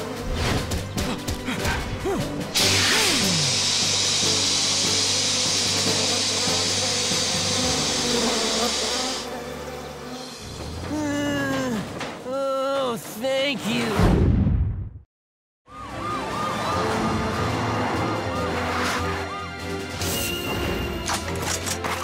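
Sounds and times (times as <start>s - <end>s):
cartoon background music: 0.0s - 9.1s, 15.7s - 22.0s.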